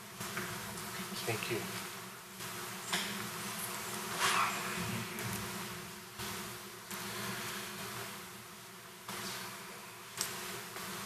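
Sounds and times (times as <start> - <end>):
electrical buzz with hum tones: 0.0 - 11.0.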